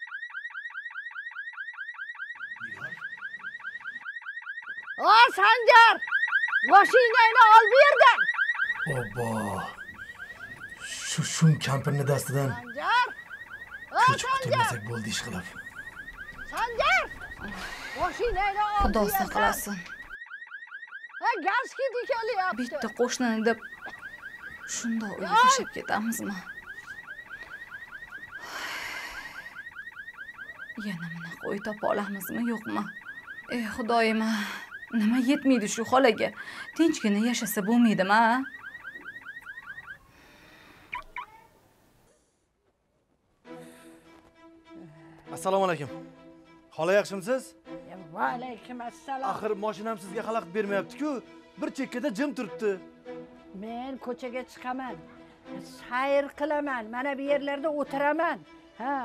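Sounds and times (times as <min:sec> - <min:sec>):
car alarm chirping: 0:00.0 - 0:40.1, 0:40.9 - 0:41.4
woman shouting: 0:05.0 - 0:06.0, 0:06.7 - 0:08.2, 0:12.6 - 0:13.2, 0:16.5 - 0:17.2, 0:21.2 - 0:22.7, 0:25.0 - 0:25.8.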